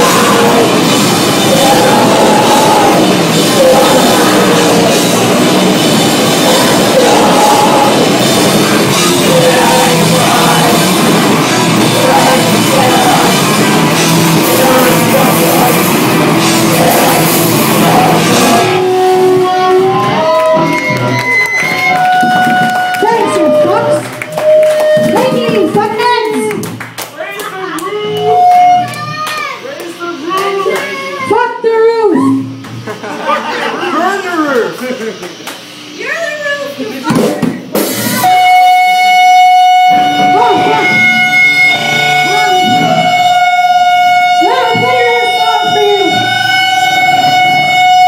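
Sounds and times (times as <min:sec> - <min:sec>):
person singing through pa: 0:00.0 - 0:20.0
band holding a high note: 0:00.0 - 0:26.7, 0:37.8 - 0:48.0
sharp claps: 0:24.0 - 0:30.9, 0:34.5 - 0:35.6.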